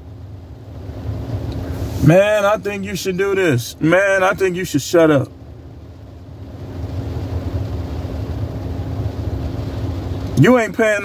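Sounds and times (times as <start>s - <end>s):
low vehicle rumble inside car: 0.0s - 11.0s.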